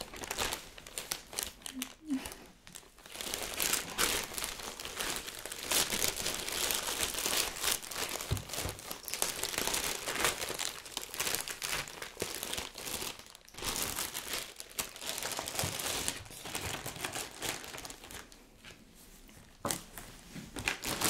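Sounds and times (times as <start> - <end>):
plastic bag crinkling: 0.0 - 18.4, 20.6 - 21.0.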